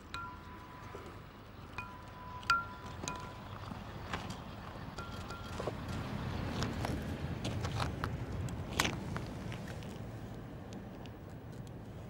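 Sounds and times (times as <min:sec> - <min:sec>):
metal tools clinking on brick: 0:01.8 - 0:03.5, 0:05.0 - 0:06.0.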